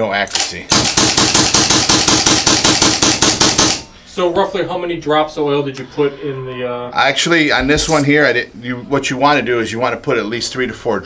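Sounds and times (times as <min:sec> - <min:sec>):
paintball marker firing rapidly: 0:00.3 - 0:03.9.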